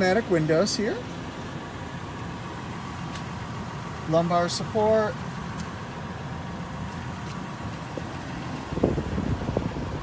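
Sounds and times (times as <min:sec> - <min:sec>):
wind buffeting microphone: 0:07.9 - 0:10.0.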